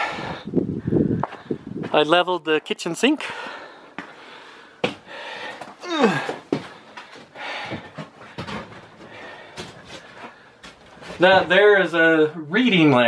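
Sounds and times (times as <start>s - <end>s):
man breathing heavily: 0.0s - 1.8s, 3.2s - 10.9s.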